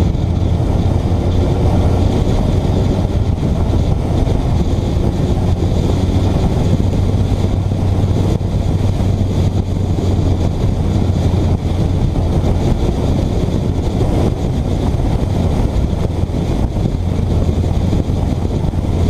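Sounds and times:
motorcycle engine humming: 0.0 - 19.0
wind buffeting microphone: 0.0 - 19.0.

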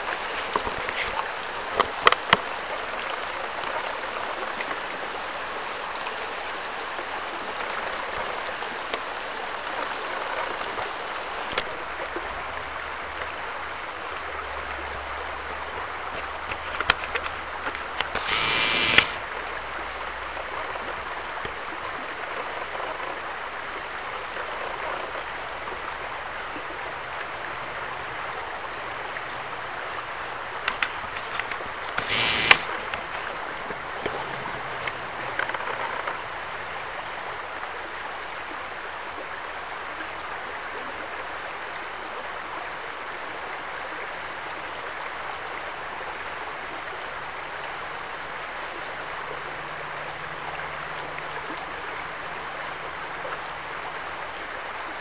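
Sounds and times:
creek water running over gravel: 0.0 - 55.0.

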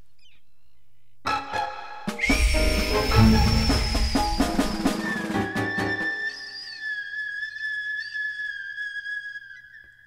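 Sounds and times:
high whistle-like tone: 2.1 - 9.6.

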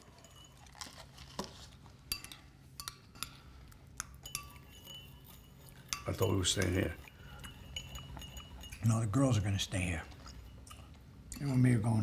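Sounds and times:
tableware clinking: 0.0 - 3.4, 4.2 - 12.0.

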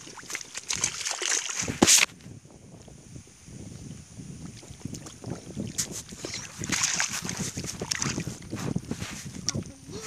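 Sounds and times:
muddy water sloshing and splashing: 0.0 - 2.1, 4.4 - 10.0
wind buffeting microphone: 1.6 - 10.0.

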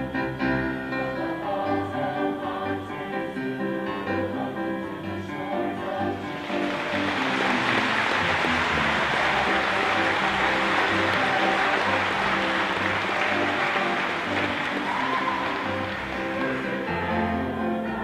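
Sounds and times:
choir singing: 0.0 - 18.0
piano accompaniment: 0.0 - 18.0.

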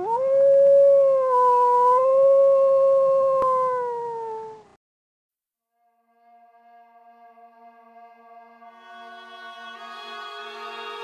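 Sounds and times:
dog howling: 0.0 - 4.6.

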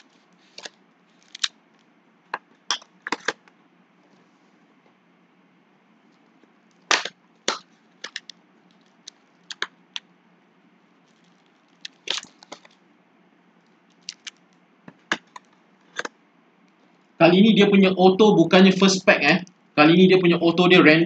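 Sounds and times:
foil packs crinkling: 0.0 - 1.5, 11.1 - 12.8, 13.9 - 14.4.

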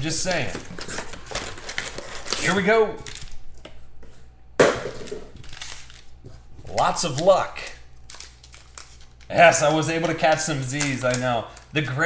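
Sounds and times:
card packaging crunching and crinkling: 0.1 - 3.5, 4.8 - 12.0.

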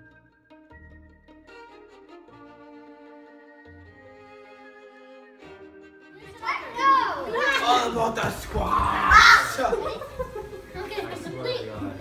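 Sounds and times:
bowed string music: 0.7 - 8.6
young girl talking: 6.2 - 7.7.

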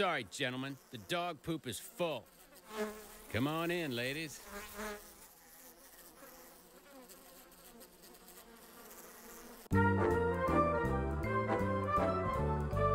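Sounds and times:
cartoon flies buzzing: 0.0 - 9.8
loud orchestral music: 9.8 - 12.9.

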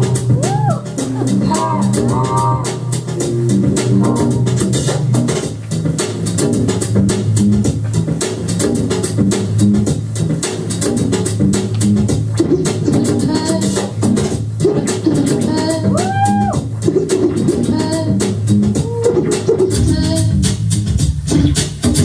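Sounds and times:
music with drum beat and bassline: 0.0 - 22.0.

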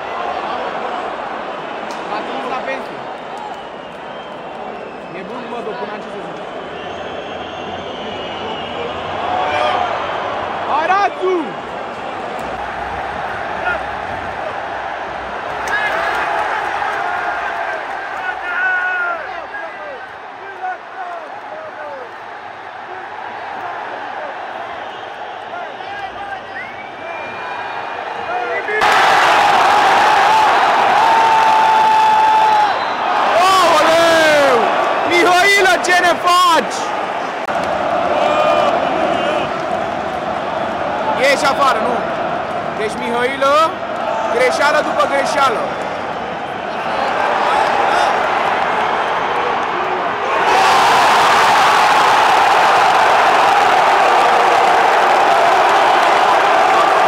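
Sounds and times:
shrill whistles: 3.4 - 5.2, 6.4 - 9.1, 26.4 - 27.6, 32.4 - 33.3
crowd jeering: 6.8 - 57.0
crowd chanting and singing: 36.7 - 46.3.

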